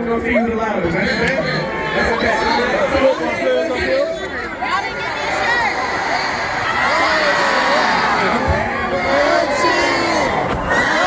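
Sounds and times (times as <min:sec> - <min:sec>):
crowd chattering and calling out: 0:00.0 - 0:11.0.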